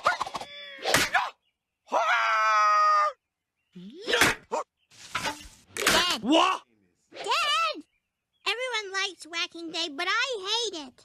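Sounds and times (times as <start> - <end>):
cartoon man yelling: 5.9 - 6.6.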